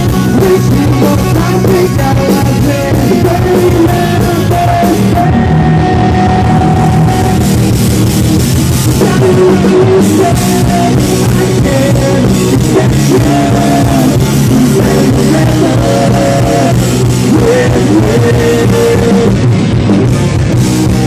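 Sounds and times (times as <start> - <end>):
bass guitar: 0.0 - 21.0
drum kit: 0.0 - 21.0
electric guitars: 0.0 - 21.0.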